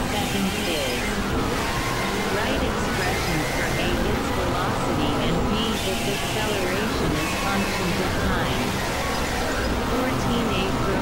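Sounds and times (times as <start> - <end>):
low drones: 0.0 - 11.0.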